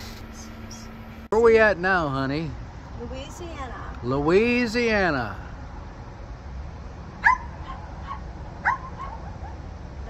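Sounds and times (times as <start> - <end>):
small dog yipping: 7.2 - 9.6.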